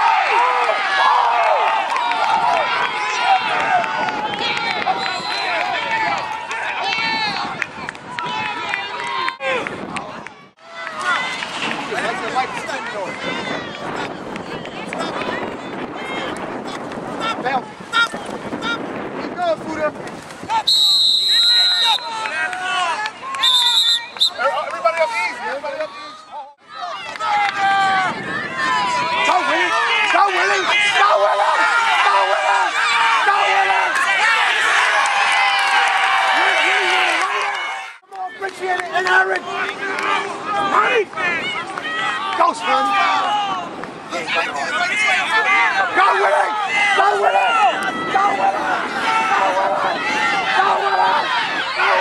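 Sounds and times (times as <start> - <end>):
spectators shouting and cheering: 0.0 - 52.0
referee's whistle blasts: 4.8 - 5.7, 20.7 - 22.3, 23.4 - 24.5.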